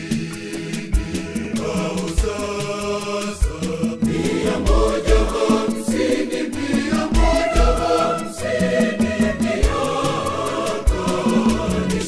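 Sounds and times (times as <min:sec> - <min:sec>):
choir singing gospel song: 0:00.0 - 0:12.0
cymbal beat: 0:00.7 - 0:12.0.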